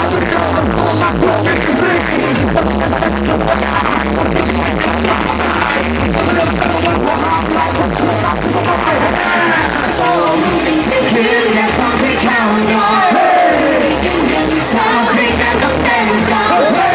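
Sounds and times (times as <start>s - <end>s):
electronic dance music: 0.0s - 16.9s.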